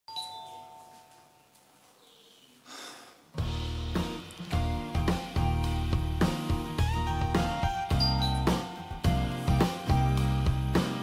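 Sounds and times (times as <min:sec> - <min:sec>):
doorbell chime: 0:00.1 - 0:01.5, 0:07.9 - 0:09.1.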